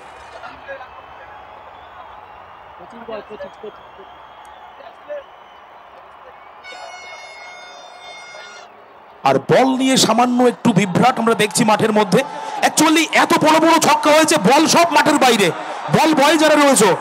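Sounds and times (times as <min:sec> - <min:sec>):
distant voices and shouts: 0:04.9 - 0:17.0
crowd murmuring: 0:05.9 - 0:13.2
steady high tone: 0:06.7 - 0:08.7.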